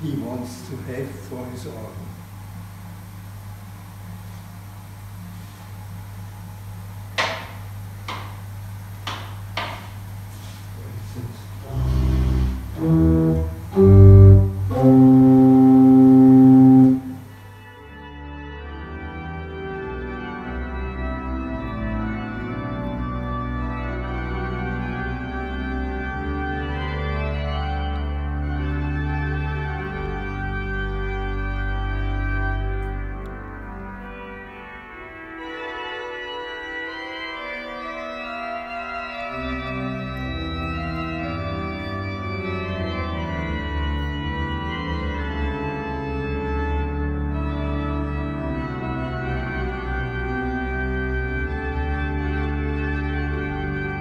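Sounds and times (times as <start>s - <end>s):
pipe organ chords: 0.0s - 54.0s
deep organ pedal bass: 6.1s - 54.0s.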